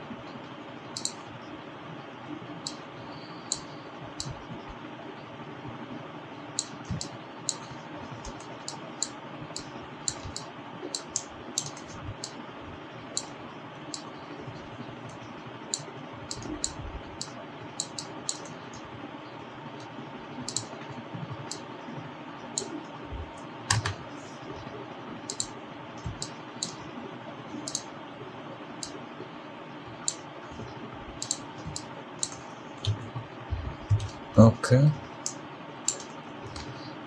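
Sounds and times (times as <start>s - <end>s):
mouse and keyboard clicks: 1.0s - 1.2s, 6.6s - 12.4s, 15.7s - 18.5s, 20.5s - 20.7s, 25.3s - 25.5s, 27.6s - 27.8s, 31.2s - 33.0s, 35.9s - 36.7s.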